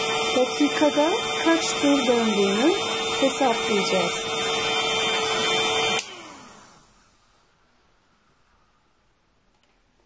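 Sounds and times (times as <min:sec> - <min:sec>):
hair dryer winding down: 0:00.0 - 0:07.1.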